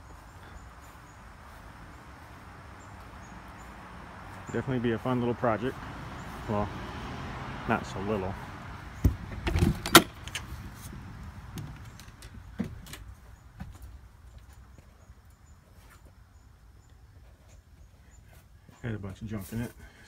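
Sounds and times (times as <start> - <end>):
trailer door clacking open: 9.0 - 10.6.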